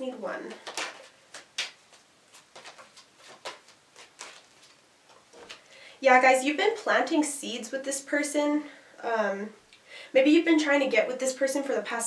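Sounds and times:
cards shuffled by hand: 0.5 - 5.7.

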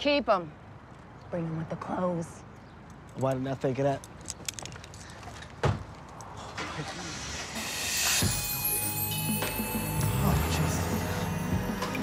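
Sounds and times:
rising swell of noise: 7.1 - 12.0.

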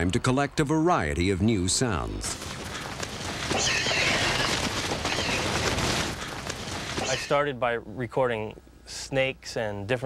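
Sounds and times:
shrill animal-like cries: 3.5 - 5.8.

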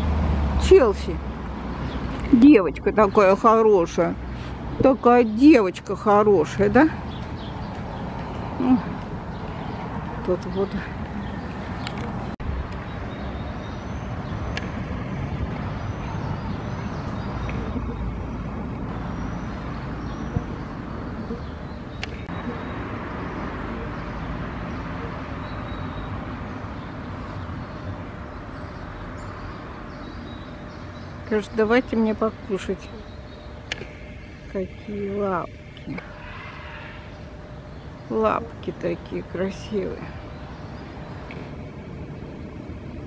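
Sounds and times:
low rumble of distant traffic: 0.0 - 43.0.

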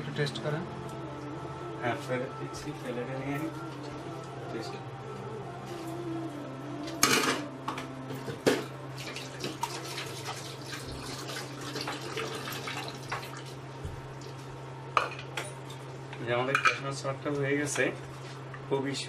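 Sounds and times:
low hum: 0.0 - 11.6
water running at a sink: 9.0 - 14.4.

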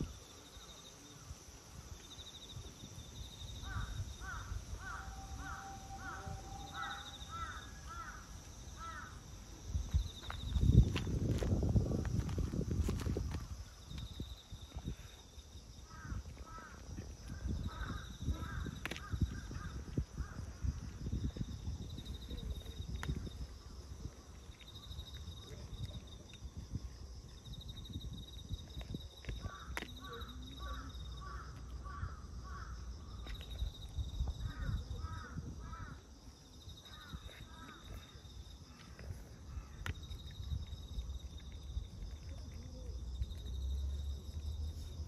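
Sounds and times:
high insect trill: 0.0 - 45.0.

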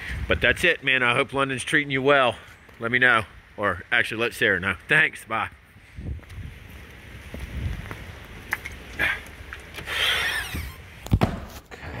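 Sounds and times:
footsteps: 5.5 - 12.0.

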